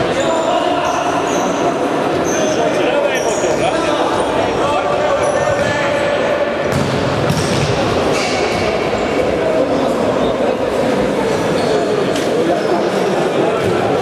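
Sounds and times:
steady din in a hall: 0:00.0 - 0:14.0.

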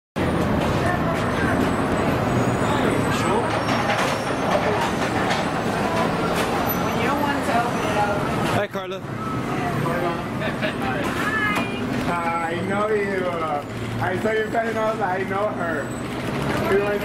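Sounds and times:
roadway traffic noise: 0:00.2 - 0:17.0.

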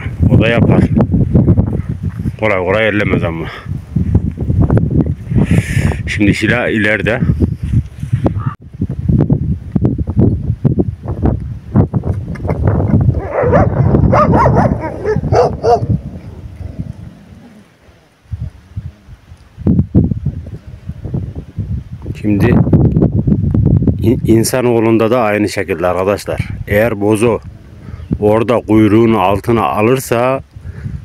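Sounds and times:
dogs barking: 0:13.2 - 0:16.0.

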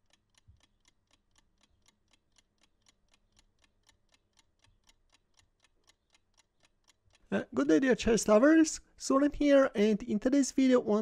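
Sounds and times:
chess clock ticking: 0:00.0 - 0:11.0.

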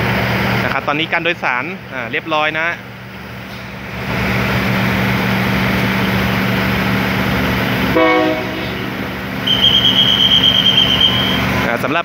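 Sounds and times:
diesel train engines running: 0:00.0 - 0:12.0
high-pitched squeal: 0:08.5 - 0:11.7.

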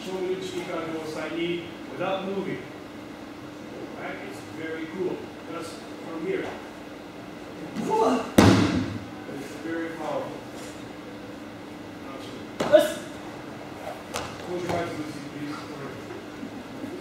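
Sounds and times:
body hitting mat with echo: 0:08.4 - 0:09.0.

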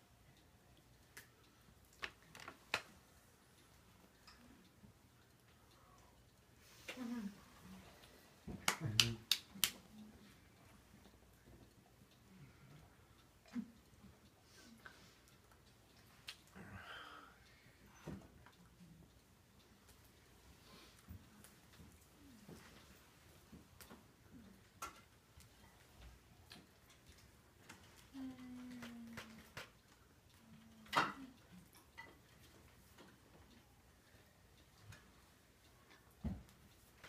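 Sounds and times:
faint clicks: 0:00.4 - 0:37.0
sharp hand claps: 0:08.6 - 0:09.8.

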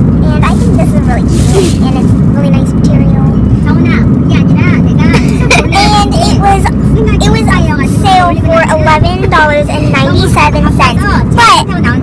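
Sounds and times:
car rumble inside cabin: 0:00.0 - 0:12.0
girl talking: 0:00.2 - 0:12.0.

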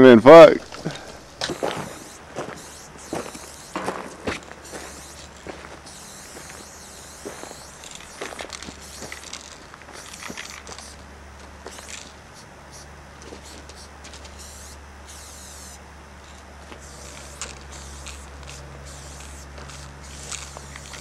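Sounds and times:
footsteps crunching on gravel: 0:00.6 - 0:06.6, 0:07.2 - 0:12.2.

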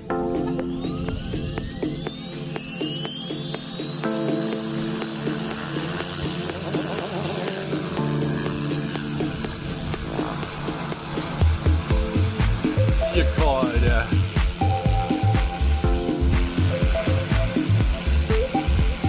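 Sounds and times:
background music: 0:00.0 - 0:19.0
model helicopter motor whine: 0:00.2 - 0:19.0.

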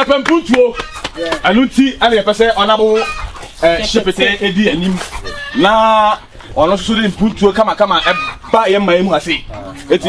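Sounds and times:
man talking loudly: 0:00.0 - 0:10.0.

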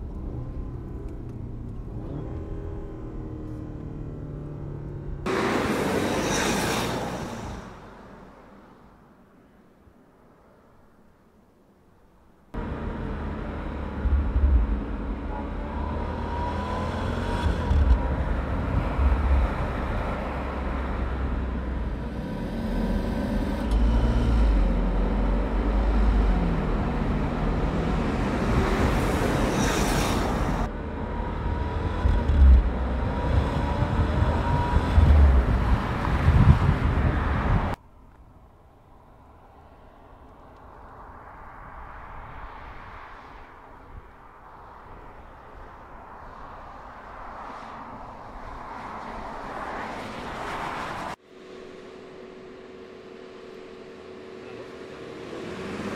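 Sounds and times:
car engine and tyre noise: 0:00.0 - 0:55.9.

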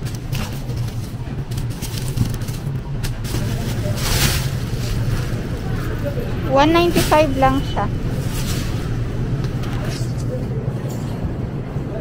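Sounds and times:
low background hum: 0:00.0 - 0:12.0
plastic bag crinkling: 0:00.2 - 0:09.0
onions being handled: 0:00.2 - 0:09.2.

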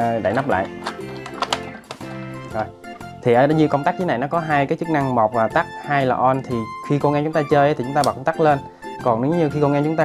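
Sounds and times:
background music: 0:00.0 - 0:10.0
plastic cover clicking shut: 0:00.6 - 0:02.1.

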